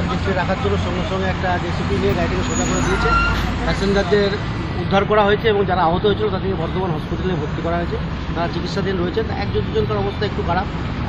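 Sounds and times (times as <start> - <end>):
people talking: 0.0 - 10.7
low road rumble: 0.0 - 11.0.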